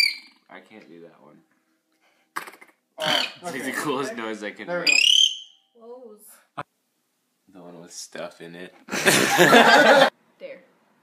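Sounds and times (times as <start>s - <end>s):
person squealing: 3.0s - 3.6s.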